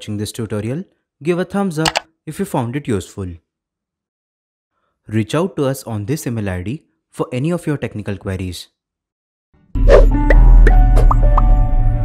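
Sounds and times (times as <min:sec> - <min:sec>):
deep loud bass tone: 0:09.8 - 0:12.0.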